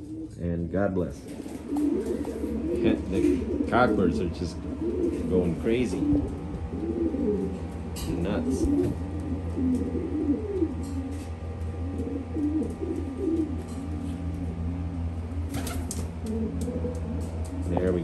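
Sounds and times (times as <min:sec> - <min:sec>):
pigeons cooing: 0:00.0 - 0:18.0
steady low hum: 0:00.0 - 0:18.0.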